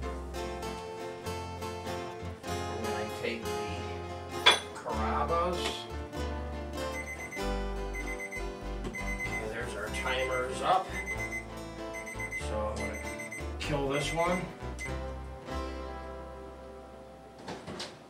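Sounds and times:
guitar background music: 0.0 - 17.6
kitchen timer beeping: 7.0 - 9.5, 10.1 - 15.0.

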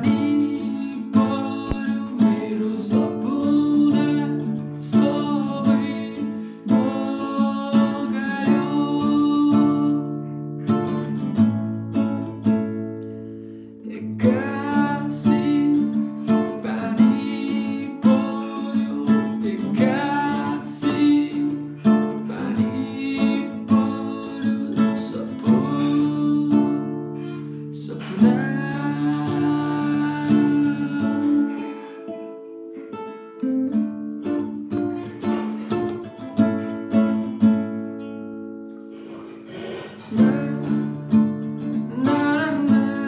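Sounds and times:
man singing: 0.0 - 11.5, 13.8 - 32.9, 39.0 - 43.0
nylon-string guitar strumming: 0.0 - 43.0.

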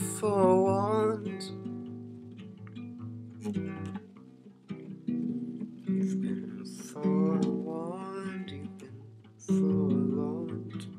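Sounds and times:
acoustic guitar strummed: 0.0 - 10.9.

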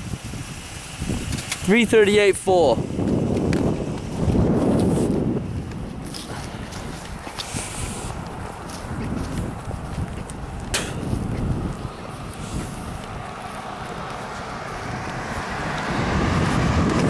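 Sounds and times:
wind on microphone: 0.0 - 17.0
footsteps on roadside verge: 2.5 - 17.0.

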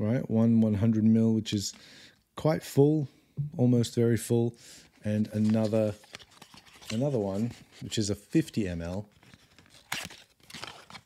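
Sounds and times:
cardboard rustling: 5.2 - 8.2, 8.9 - 11.0.

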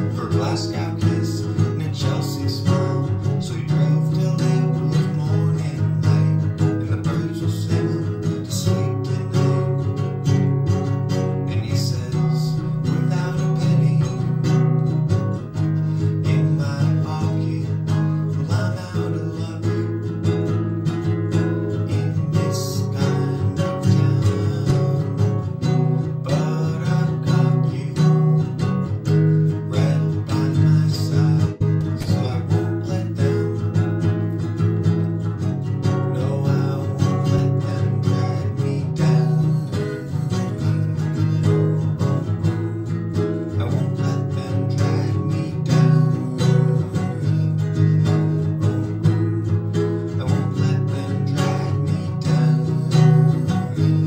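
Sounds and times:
acoustic guitar strumming: 0.0 - 54.0.

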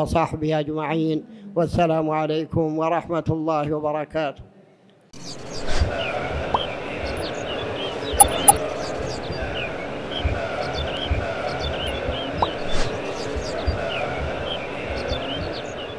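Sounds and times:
sharp clicks: 8.2 - 8.6
short chirps: 8.2 - 8.6.

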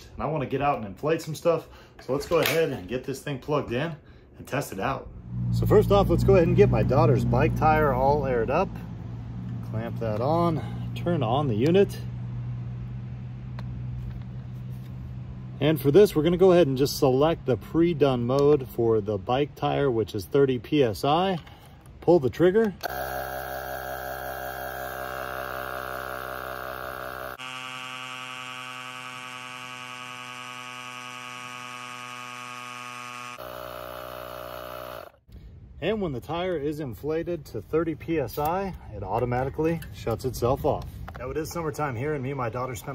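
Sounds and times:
low mechanical hum: 22.7 - 35.8.

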